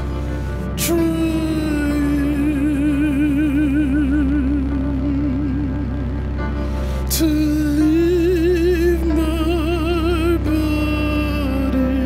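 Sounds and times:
low sustained drone: 0.0s - 12.0s
operatic singing voice: 0.0s - 12.0s.

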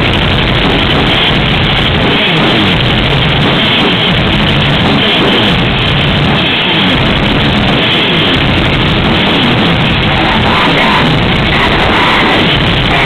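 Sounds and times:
black metal band playing live: 0.0s - 13.0s.

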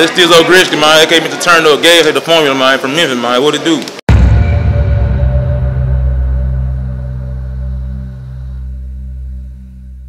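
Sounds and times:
deep bass drone: 4.1s - 10.0s.

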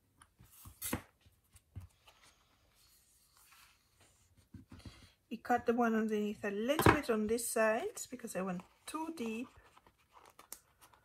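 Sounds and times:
paper rustling: 8.4s - 11.0s.

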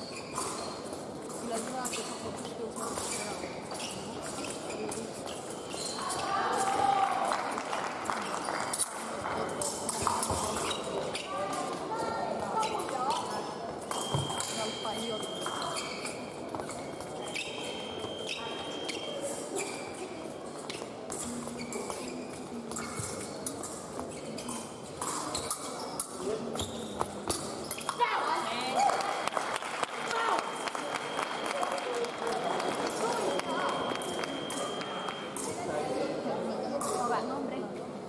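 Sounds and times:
voices in echoing hall: 0.0s - 38.0s.

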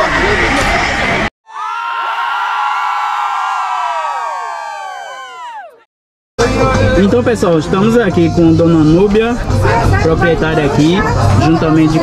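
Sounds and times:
high voices cheering: 1.5s - 5.8s.

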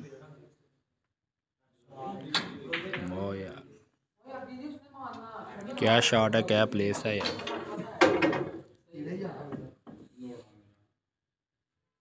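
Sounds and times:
men talking: 1.9s - 3.8s, 5.6s - 7.4s.

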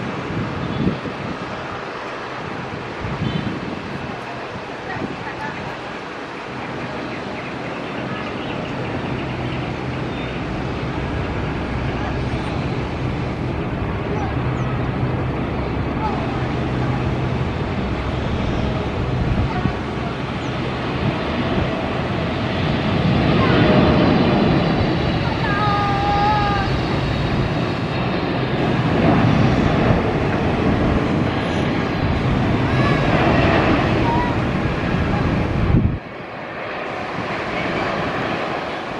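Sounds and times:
jet airliner rumbling past: 0.0s - 38.9s.

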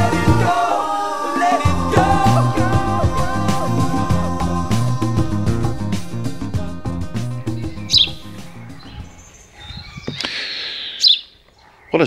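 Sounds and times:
background music: 0.0s - 9.4s
birds chirping: 1.6s - 12.0s.

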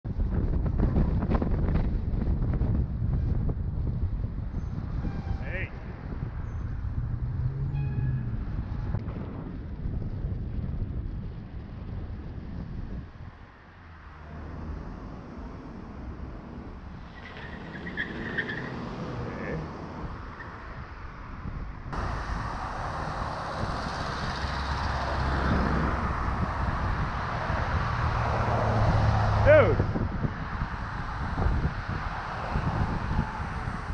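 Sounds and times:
wind rushing over microphone: 0.0s - 33.9s
road traffic driving past: 4.8s - 9.6s, 12.6s - 33.9s.

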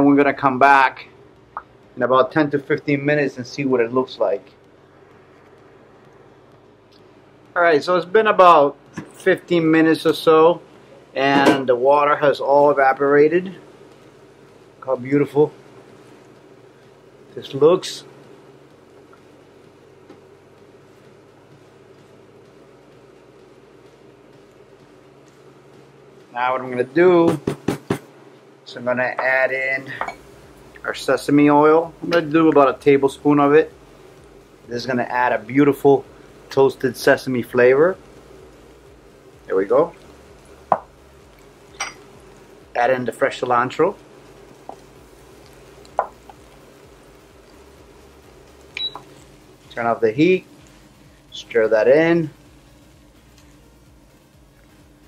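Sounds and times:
steady low hum: 0.0s - 55.0s
cooktop short high beep: 48.8s - 49.0s.

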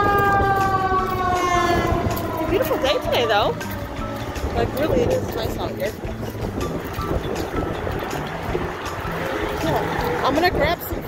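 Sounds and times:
street traffic: 0.0s - 11.0s.

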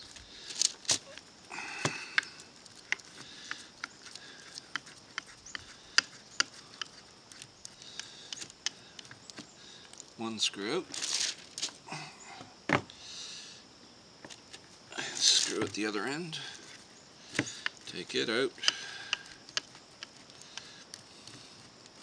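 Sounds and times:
screw turning in wood clicking: 2.1s - 9.4s.

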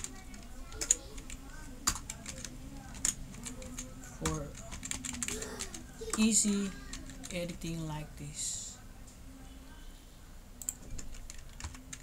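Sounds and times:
computer keyboard clicking: 0.0s - 6.3s, 10.6s - 12.0s.

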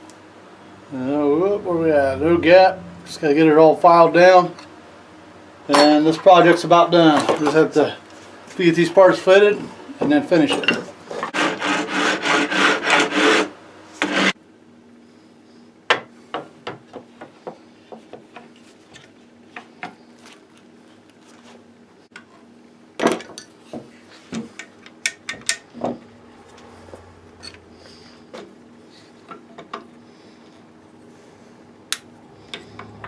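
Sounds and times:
hand file rasping on wood: 11.3s - 14.4s.

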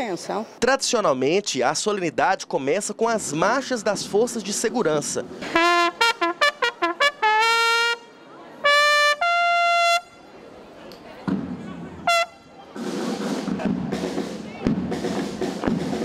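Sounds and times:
bugle call: 5.4s - 10.2s, 12.1s - 12.5s.

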